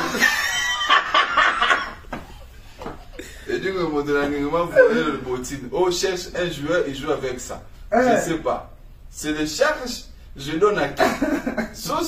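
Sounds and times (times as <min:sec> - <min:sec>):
man laughing in a cackle: 0:00.0 - 0:03.4.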